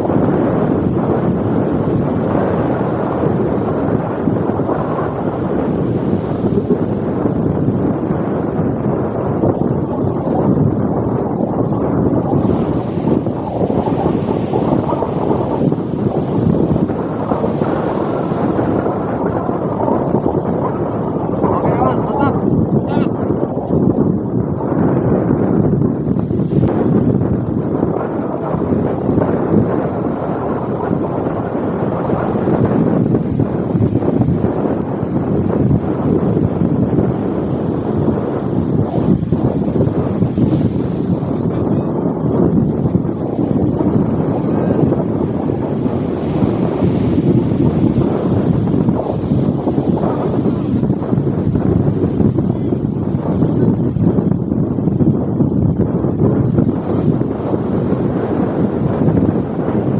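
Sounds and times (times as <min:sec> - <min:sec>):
surf breaking on beach: 0:00.0 - 0:59.9
wind buffeting microphone: 0:00.0 - 0:59.9.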